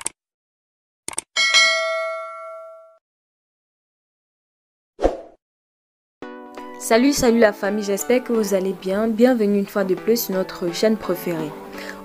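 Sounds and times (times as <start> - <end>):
bright bell ding: 1.4 - 3.0.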